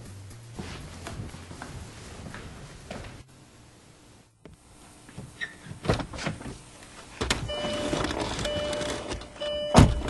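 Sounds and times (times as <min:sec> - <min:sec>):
shuffling: 0:00.4 - 0:03.3.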